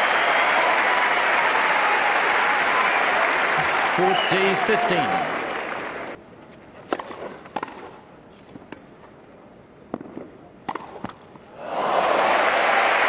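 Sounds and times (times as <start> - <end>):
crowd applause: 0.0 - 6.2, 11.6 - 13.0
tennis ball struck by racket: 6.9 - 8.0, 9.9 - 11.2.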